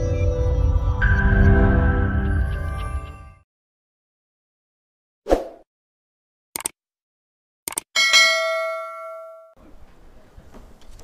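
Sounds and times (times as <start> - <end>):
bell ding: 8.0 - 9.6.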